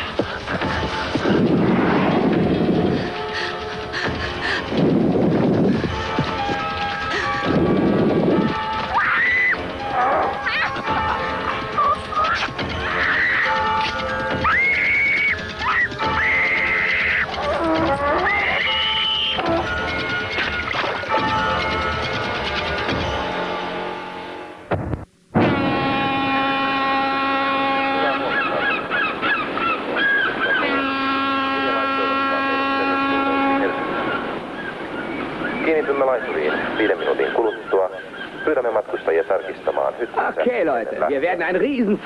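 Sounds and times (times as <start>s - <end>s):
film soundtrack music: 0.0s - 42.0s
gulls calling: 8.4s - 22.0s, 25.9s - 41.6s.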